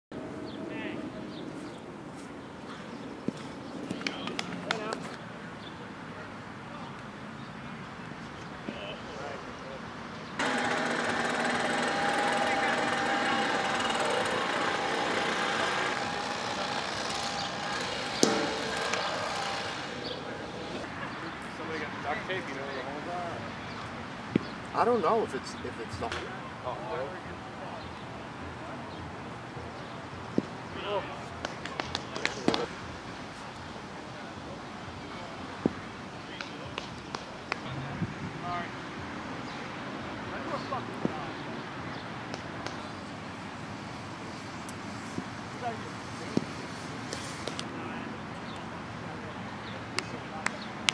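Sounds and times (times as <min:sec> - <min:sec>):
sharp crack: 0:10.4 - 0:20.2
motor humming: 0:10.4 - 0:20.8
players calling out: 0:10.4 - 0:23.5
plastic ball hitting backstop: 0:18.2 - 0:18.6.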